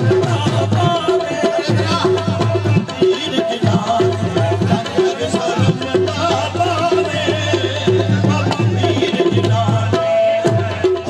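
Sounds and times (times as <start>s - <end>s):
tabla beat: 0.0s - 11.0s.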